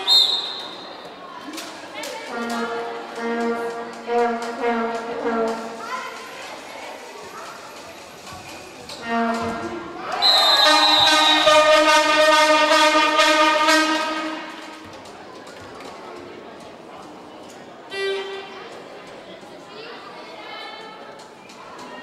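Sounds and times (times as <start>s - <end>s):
short high whistle: 0.0s - 1.0s, 10.2s - 11.7s
hand-held horns blowing: 9.0s - 14.8s, 17.9s - 18.5s.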